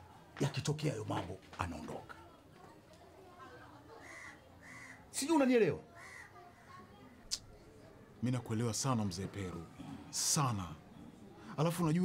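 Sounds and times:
faint bird calls: 0:04.0 - 0:05.1.

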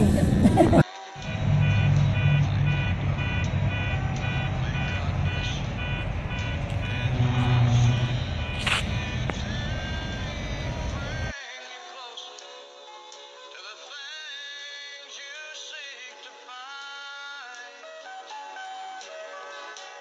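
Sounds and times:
vehicle low rumble: 0:00.0 - 0:11.3
repeating tune of short tones: 0:01.2 - 0:11.1.

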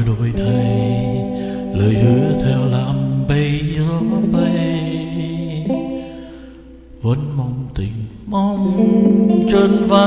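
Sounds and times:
acoustic guitar: 0:00.0 - 0:10.0
man singing long notes: 0:00.0 - 0:10.0.

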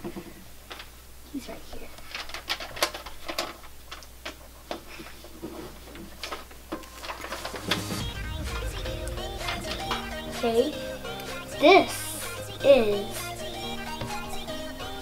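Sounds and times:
background music with bass: 0:07.6 - 0:15.0.

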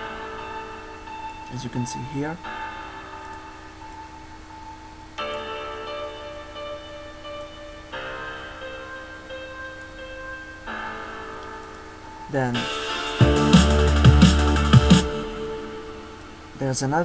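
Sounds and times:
synthesized piano and pad chords: 0:00.0 - 0:17.0.

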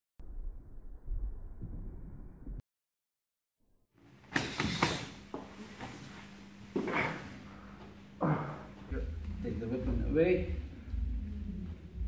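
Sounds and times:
scuffing and rustling of uniforms: 0:04.5 - 0:08.0.

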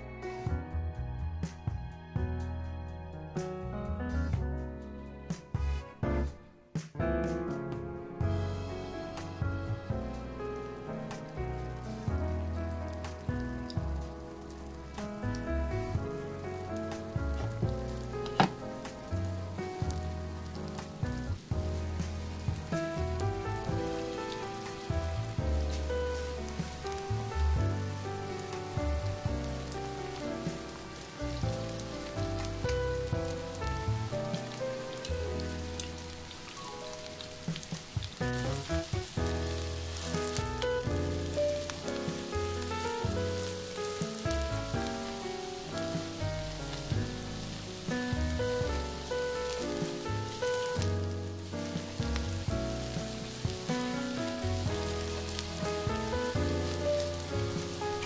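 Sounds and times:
background music with bass line: 0:00.0 - 0:58.0
food sizzling in oil: 0:08.3 - 0:58.0.

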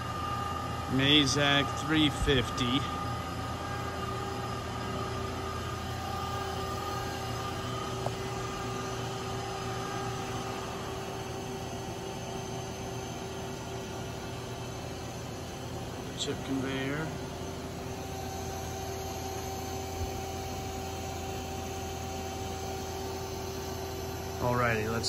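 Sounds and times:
machine hum with whining tones: 0:00.0 - 0:25.0.

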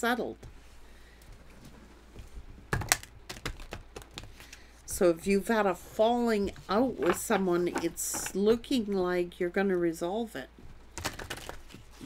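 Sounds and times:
cards being shuffled: 0:02.7 - 0:04.6, 0:11.0 - 0:12.0.

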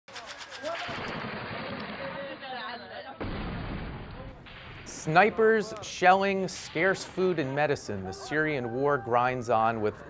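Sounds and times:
rapid automatic gunfire: 0:00.1 - 0:02.4
battlefield noise: 0:00.1 - 0:10.0
voices: 0:04.2 - 0:10.0.

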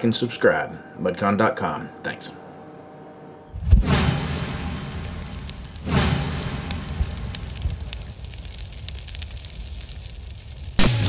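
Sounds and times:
deep hit: 0:03.6 - 0:08.6
crackling fizzing hiss: 0:03.9 - 0:10.9.

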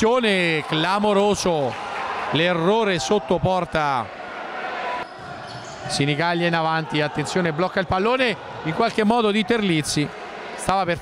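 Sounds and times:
crowd noise in hall: 0:00.0 - 0:11.0
ball and players on wooden court: 0:05.0 - 0:06.0.

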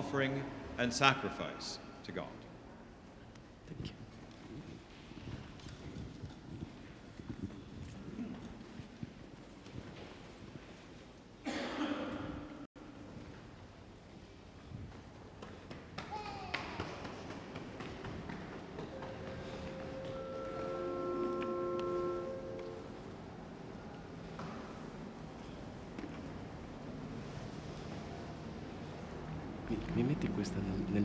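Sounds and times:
footsteps on hard floor: 0:17.2 - 0:22.9
church organ chord: 0:18.9 - 0:23.2.

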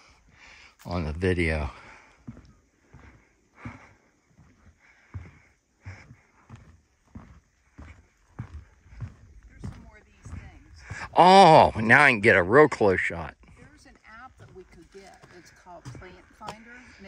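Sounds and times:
footsteps on wooden boardwalk: 0:00.0 - 0:17.0.

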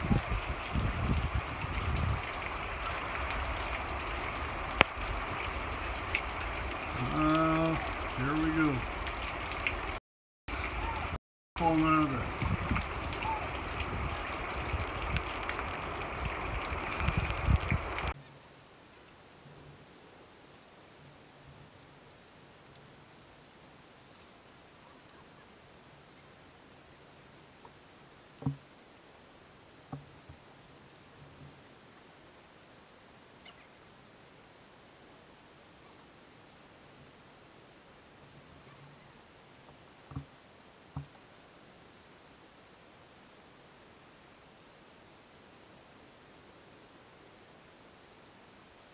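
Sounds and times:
storm wind buffeting microphone: 0:00.0 - 0:18.2
faint steady hiss: 0:00.0 - 0:48.9
rain: 0:00.0 - 0:48.9.

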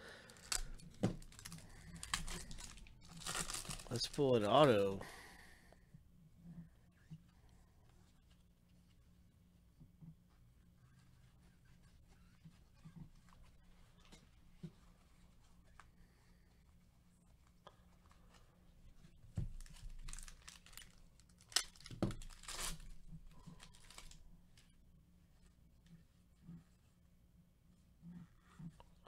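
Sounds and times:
card pack wrapper tearing: 0:00.3 - 0:05.0, 0:19.6 - 0:24.2
cards being flipped: 0:00.4 - 0:04.9.

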